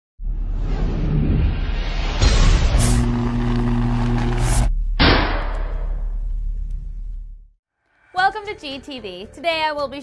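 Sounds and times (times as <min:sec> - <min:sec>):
rising sound effect: 0:00.2 - 0:06.3
deep rumble: 0:00.2 - 0:07.6
low hum: 0:00.2 - 0:07.6.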